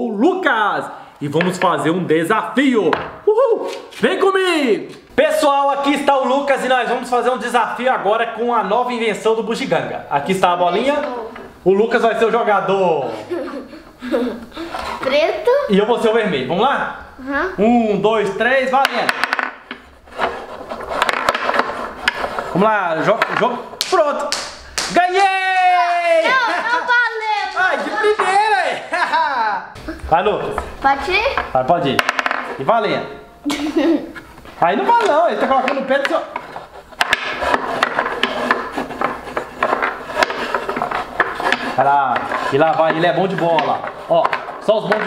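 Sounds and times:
wooden rods rubbing and rasping: 14.5s - 15.2s, 18.8s - 23.9s, 34.1s - 45.0s.

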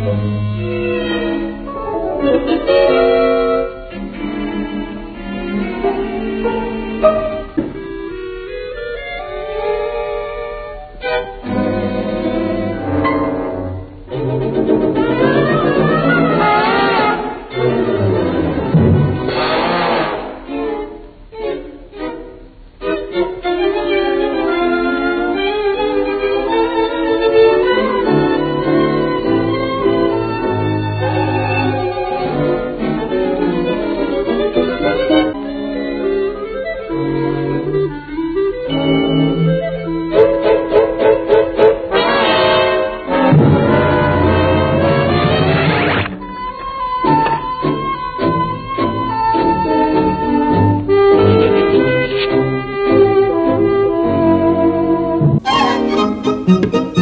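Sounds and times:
orchestral music with bowed strings: 0.0s - 57.0s.

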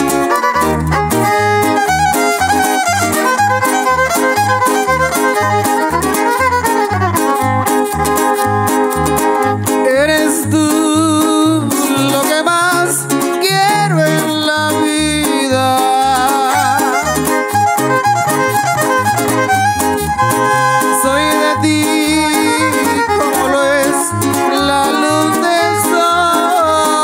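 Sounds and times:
plucked bass beat: 0.0s - 27.0s
strummed guitars: 0.0s - 27.0s
violin melody: 0.0s - 27.0s.

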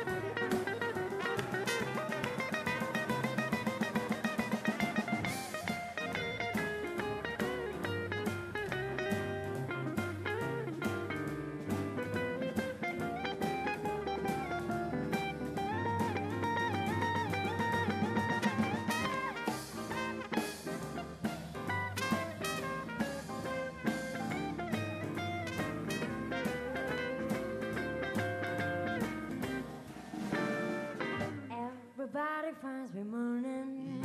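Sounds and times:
plucked double bass: 0.0s - 31.4s
drum kit with cymbal strokes: 0.0s - 31.6s
jazz melody lines: 0.0s - 31.7s.

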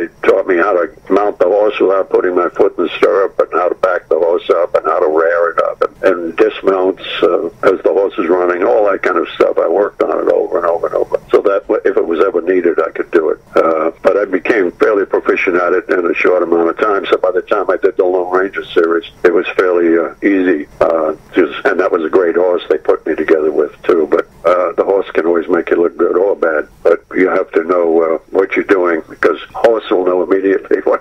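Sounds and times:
man talking over telephone: 0.0s - 31.0s.

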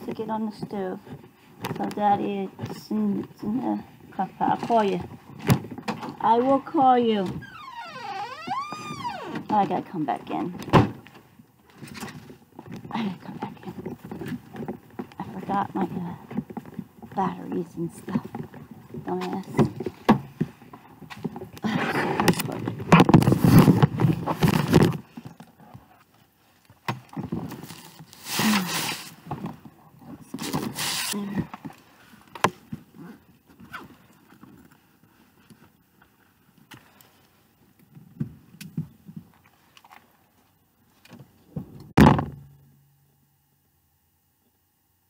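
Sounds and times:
loud short thump: 42.0s - 42.6s.

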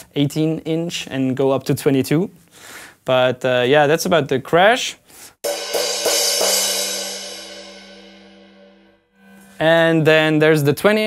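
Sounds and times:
crash cymbal ringing: 5.4s - 10.5s.

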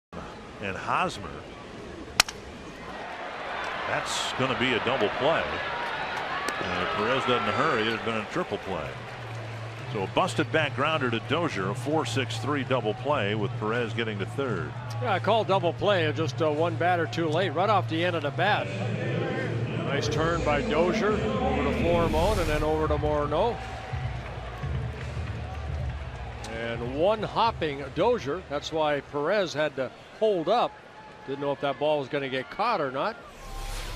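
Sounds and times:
stadium crowd noise: 0.2s - 33.9s
wooden bat hitting ball: 2.2s - 2.4s
crowd murmur: 18.6s - 22.2s.

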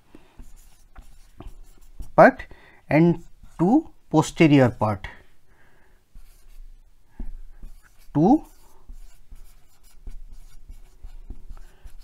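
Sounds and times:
marker writing on whiteboard: 0.1s - 4.0s, 6.1s - 12.0s.

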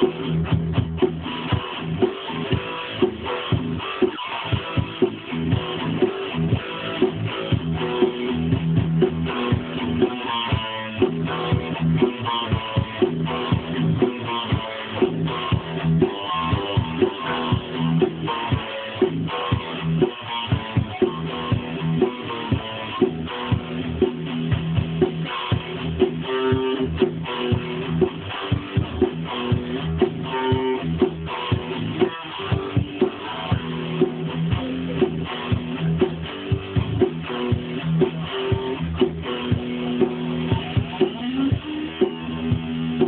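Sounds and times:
guitar picking and strumming: 0.0s - 43.0s.

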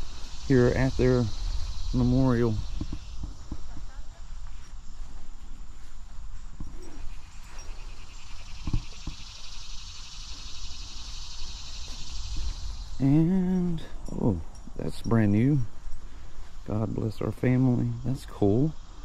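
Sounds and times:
high-pitched insect chorus: 0.0s - 19.0s.

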